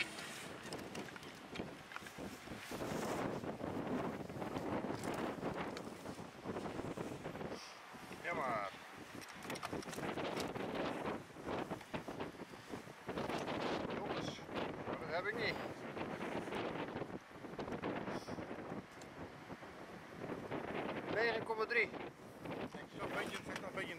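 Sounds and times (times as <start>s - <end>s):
wind buffeting microphone: 0.0s - 23.9s.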